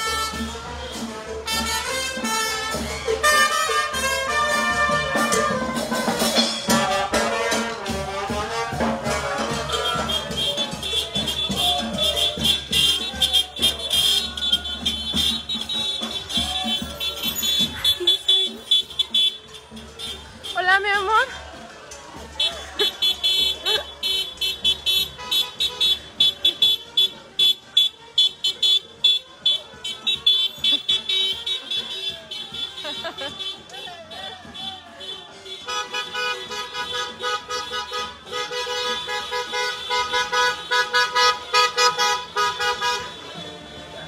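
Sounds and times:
folk brass and drum music: 0:00.0 - 0:44.0
fast shaker-like beat: 0:04.8 - 0:19.2.

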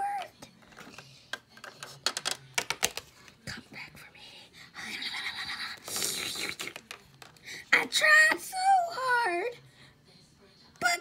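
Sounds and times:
plastic toy figures clicking: 0:01.3 - 0:03.0
breathy whispering: 0:03.3 - 0:06.8.

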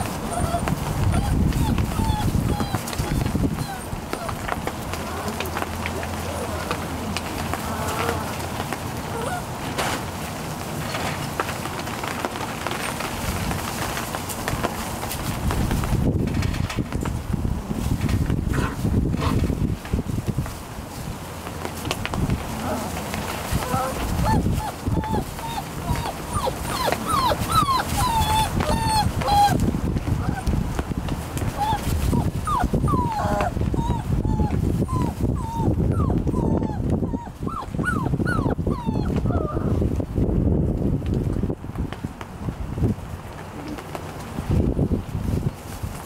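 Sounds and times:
puppies whining and yipping: 0:00.0 - 0:05.4, 0:06.1 - 0:06.8, 0:09.1 - 0:09.5, 0:23.5 - 0:30.6, 0:31.5 - 0:39.8.

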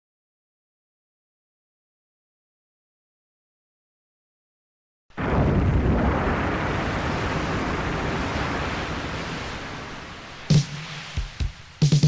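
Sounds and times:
falling rain hiss: 0:06.2 - 0:12.0
drum machine hit: 0:10.5 - 0:12.0.

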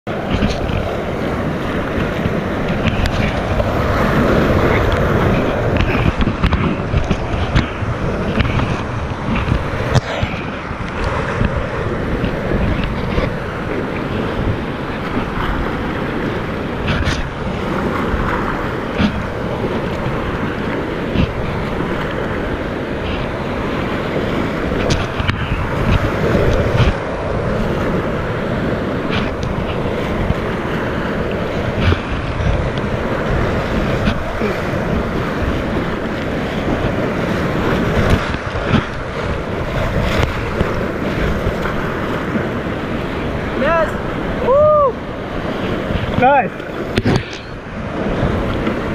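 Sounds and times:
wind buffeting microphone: 0:00.0 - 0:48.9
whitewater rapids rushing: 0:00.1 - 0:48.9.

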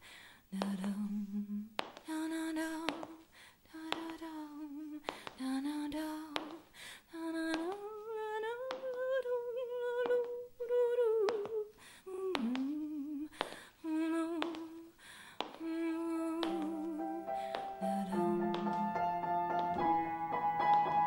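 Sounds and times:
woman humming: 0:07.8 - 0:15.0, 0:15.6 - 0:19.2
piano chord: 0:17.0 - 0:21.0.

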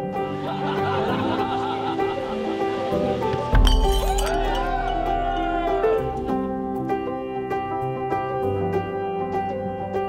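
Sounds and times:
background music with deep bass: 0:00.0 - 0:10.0
sharp glassy clink: 0:03.6 - 0:05.0.

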